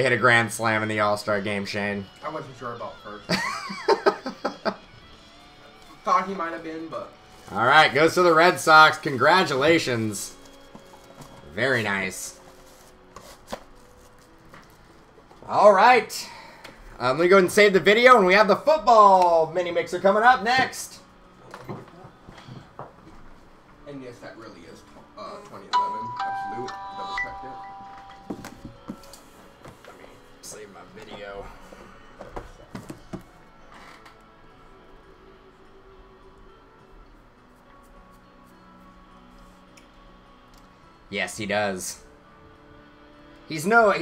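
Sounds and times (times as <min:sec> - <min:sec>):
faint background music: 0:00.0 - 0:44.0.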